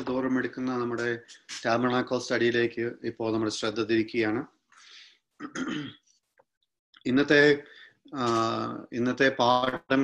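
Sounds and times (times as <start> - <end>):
man talking: 0.0 - 4.6, 7.0 - 10.0
man clearing his throat: 5.4 - 6.1.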